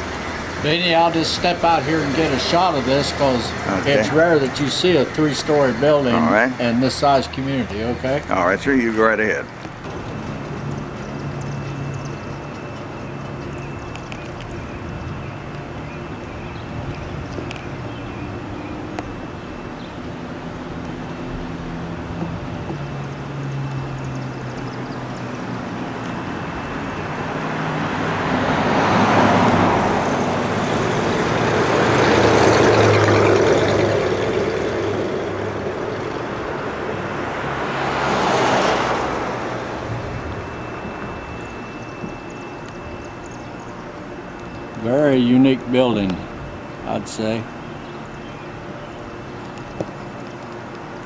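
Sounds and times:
low steady engine hum: 0:00.0 - 0:51.0
vehicles passing: 0:00.0 - 0:51.0.

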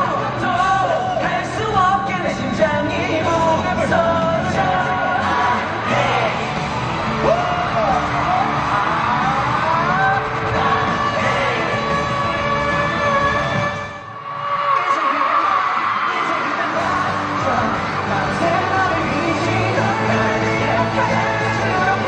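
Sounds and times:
amplified music with singing: 0:00.0 - 0:22.0
fans yelling: 0:00.0 - 0:22.0.

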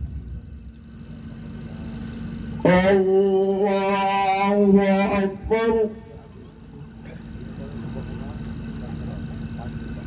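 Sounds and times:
faint hum: 0:00.0 - 0:10.0
low steady rumble: 0:00.0 - 0:10.0.

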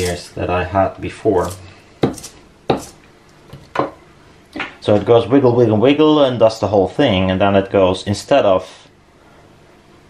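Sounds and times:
hard objects knocking on countertop: 0:03.5 - 0:04.0.

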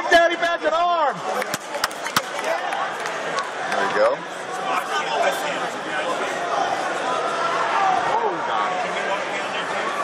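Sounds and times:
crowded arena noise: 0:00.0 - 0:10.0.

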